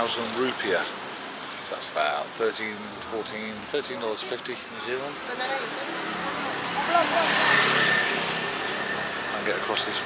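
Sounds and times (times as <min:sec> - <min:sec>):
vehicle engine passing: 0:05.6 - 0:10.0.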